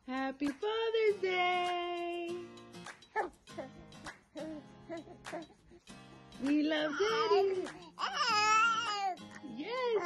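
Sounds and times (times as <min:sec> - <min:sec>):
background music: 0:00.0 - 0:10.0
baby cooing: 0:03.2 - 0:03.8, 0:06.7 - 0:10.0.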